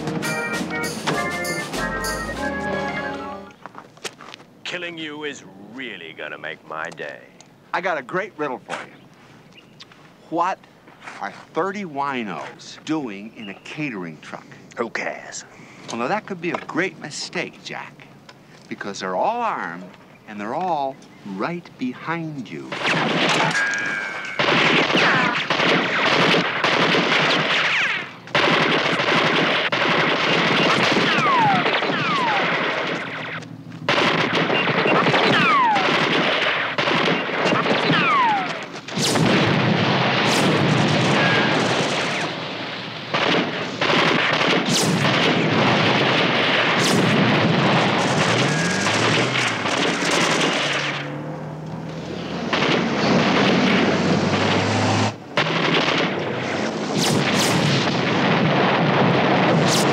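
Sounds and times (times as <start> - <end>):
automatic gunfire: 22.7 - 42.4, 43.1 - 51.1, 52.5 - 54.6, 55.4 - 59.9
explosions: 22.7 - 51.2, 52.4 - 59.9
falling whistles: 48.4 - 49.1.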